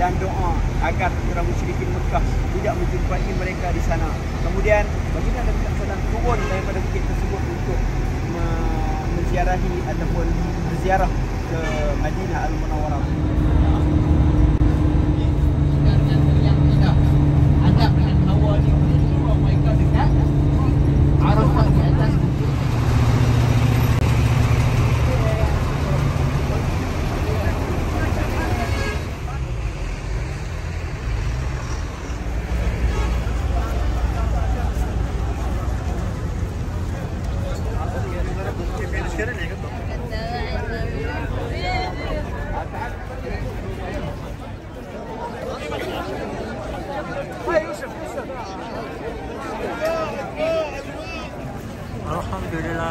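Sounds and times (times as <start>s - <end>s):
loud steady engine drone: 0.0s - 44.7s
vehicle engine running: 0.0s - 44.8s
voices: 0.0s - 52.9s.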